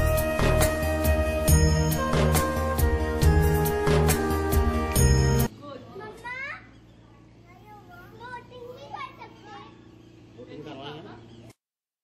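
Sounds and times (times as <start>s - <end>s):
children chattering and calling: 5.8s - 10.6s.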